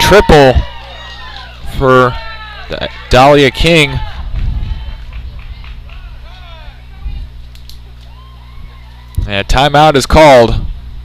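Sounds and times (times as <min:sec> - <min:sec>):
distant crowd shouting and cheering: 0:00.0 - 0:10.4
steady low hum: 0:00.0 - 0:11.0.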